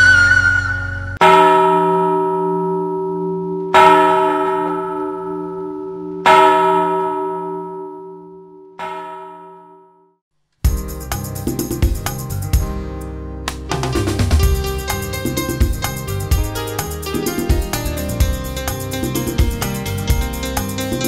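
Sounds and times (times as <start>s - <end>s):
church bell ringing: 1.2s - 10.1s.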